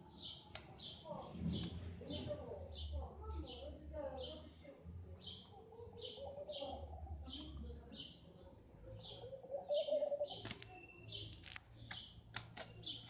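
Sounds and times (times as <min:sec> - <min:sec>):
bird chirping: 0:05.2 - 0:13.0.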